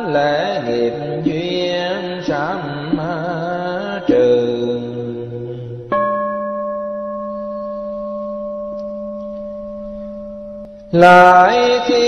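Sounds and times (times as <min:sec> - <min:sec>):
bowl bell ringing: 0:05.9 - 0:11.0.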